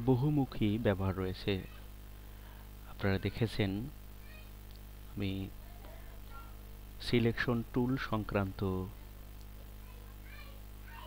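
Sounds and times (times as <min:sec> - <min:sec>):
man speaking: 0:00.0 - 0:01.8, 0:02.9 - 0:04.0, 0:05.1 - 0:05.6, 0:06.4 - 0:09.0
low electrical hum: 0:00.0 - 0:11.0.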